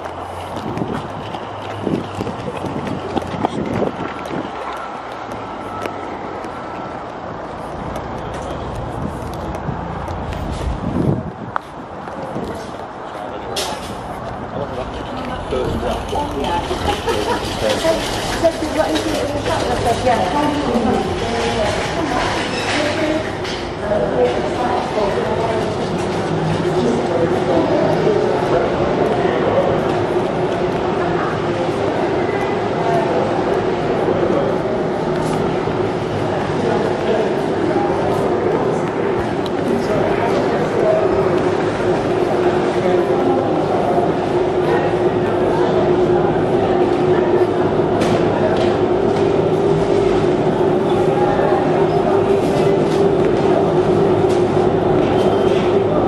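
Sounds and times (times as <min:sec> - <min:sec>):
indistinct voices: 0:00.0 - 0:56.0
shop floor rumble: 0:00.0 - 0:56.0
traffic noise: 0:00.0 - 0:56.0.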